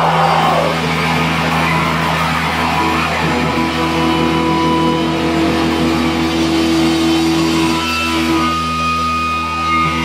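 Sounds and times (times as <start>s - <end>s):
distorted electric guitars and bass: 0.0s - 10.0s.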